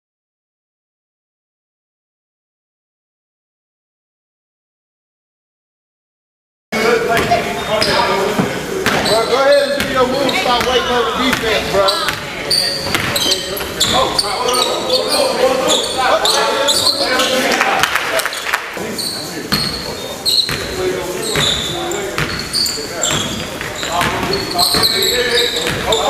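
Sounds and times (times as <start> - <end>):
sneaker squeaks: 7.1 - 17.6, 18.3 - 26.0
basketball bouncing on hardwood: 10.6 - 14.0, 23.1 - 25.0.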